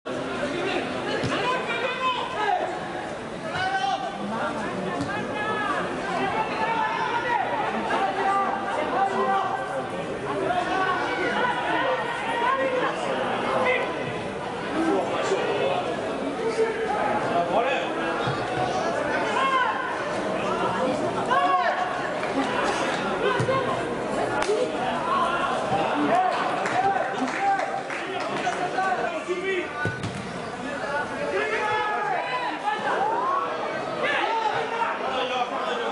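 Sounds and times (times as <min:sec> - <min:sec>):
shouts and chatter of crowd: 0:00.1 - 0:35.9
voices talking and calling out: 0:00.1 - 0:35.9.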